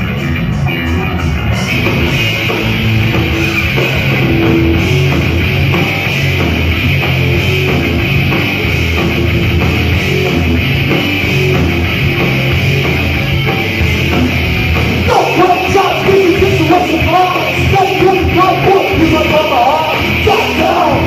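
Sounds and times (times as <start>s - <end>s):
bass guitar: 0.0s - 21.0s
distorted electric guitars: 0.0s - 21.0s
drum kit: 0.0s - 21.0s.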